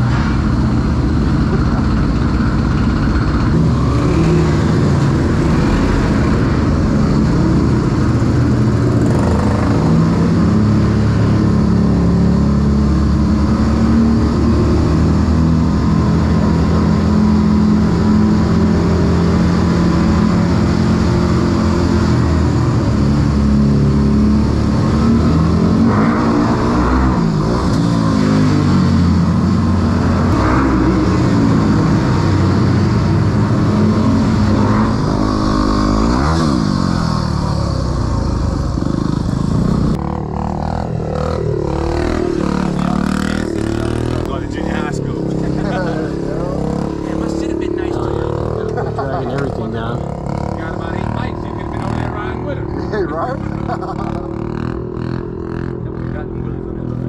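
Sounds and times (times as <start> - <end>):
dirt bike engine revving: 0.0 - 56.6.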